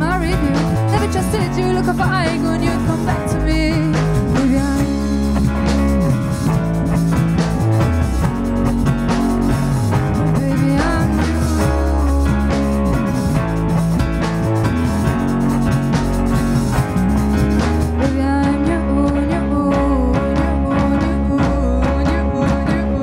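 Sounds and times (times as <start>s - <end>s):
woman singing: 0.0s - 5.9s, 10.2s - 12.6s, 18.0s - 23.0s
pop rock band playing: 0.0s - 23.0s.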